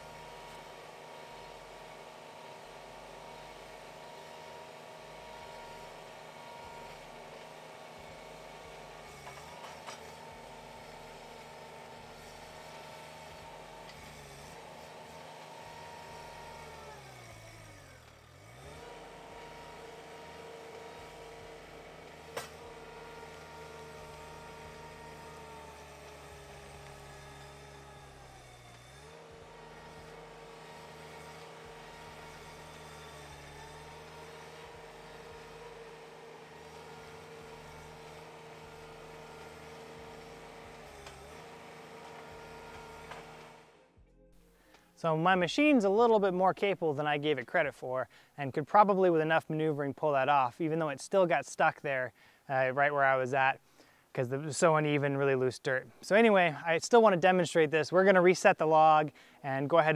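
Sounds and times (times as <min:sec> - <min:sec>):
skid steer engine straining: 0:00.0 - 0:48.0.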